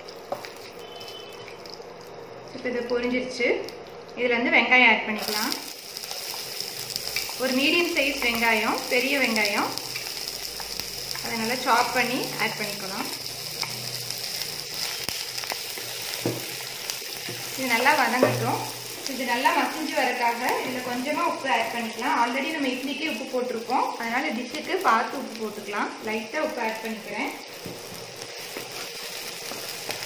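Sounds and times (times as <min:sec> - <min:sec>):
onions sizzling in hot oil: 0:00.0 - 0:03.4, 0:05.1 - 0:30.0.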